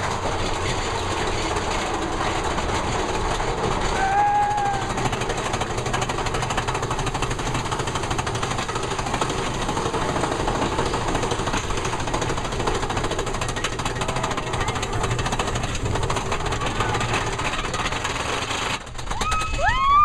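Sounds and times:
roller coaster lift chain clatter: 0:00.0 - 0:20.0.

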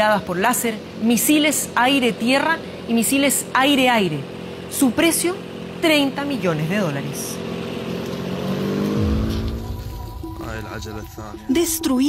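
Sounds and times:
pitched drone rising: 0:07.9 - 0:12.0
deep low rumble: 0:09.0 - 0:12.0.

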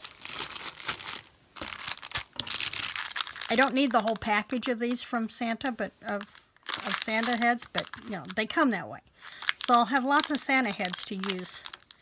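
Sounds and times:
plastic bag crinkling: 0:00.0 - 0:08.6, 0:09.2 - 0:12.0.

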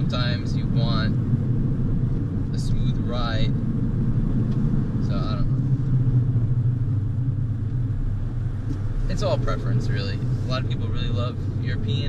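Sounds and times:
car engine and road noise drone: 0:00.0 - 0:12.0.

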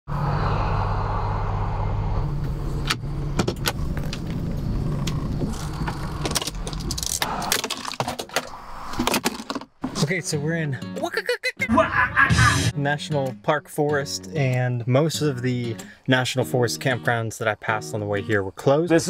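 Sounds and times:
van engine idling: 0:00.1 - 0:06.8.

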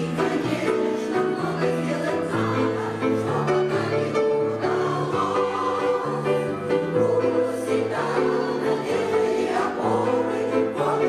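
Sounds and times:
women's choir singing in harmony: 0:00.0 - 0:11.0.

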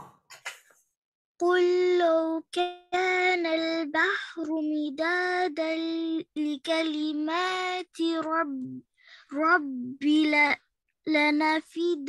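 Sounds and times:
child chanting: 0:01.4 - 0:12.0.

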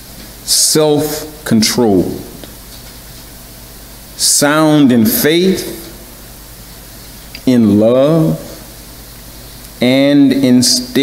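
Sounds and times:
microphone hiss: 0:00.0 - 0:11.0
man speaking: 0:00.5 - 0:02.4, 0:04.2 - 0:06.0, 0:07.4 - 0:08.7, 0:09.8 - 0:11.0.

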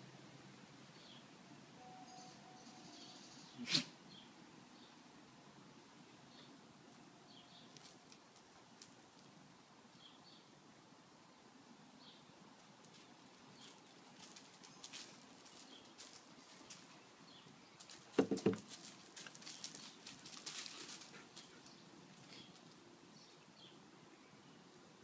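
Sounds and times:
faint bird chirps: 0:01.8 - 0:04.9
paws scuffling on gravel: 0:12.8 - 0:22.8.

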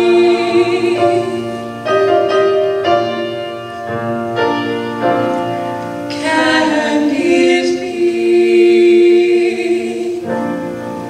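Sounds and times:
girls singing in harmony: 0:00.0 - 0:02.4, 0:06.0 - 0:11.0
piano accompaniment: 0:00.0 - 0:11.0.

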